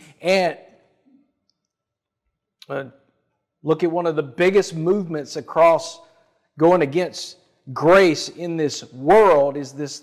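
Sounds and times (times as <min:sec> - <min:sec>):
man talking: 0:00.0 - 0:00.8, 0:02.6 - 0:03.0, 0:03.6 - 0:10.0.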